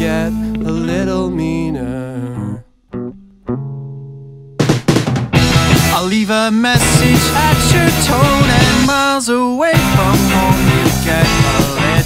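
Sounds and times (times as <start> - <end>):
plucked guitar notes: 0.0 - 6.0, 6.8 - 9.0
rock band playing: 4.6 - 9.1, 9.7 - 12.0.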